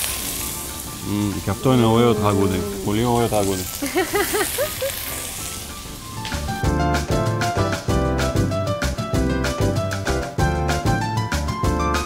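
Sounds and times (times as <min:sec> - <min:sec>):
vegetables sizzling in frying pan: 0:00.0 - 0:06.7
person humming: 0:01.0 - 0:03.7
upbeat background music: 0:01.0 - 0:12.0.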